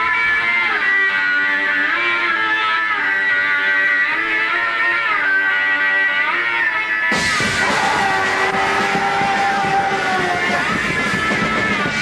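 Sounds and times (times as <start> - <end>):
distorted electric guitar: 0.0 - 12.0
crashing drums and cymbals: 7.1 - 12.0.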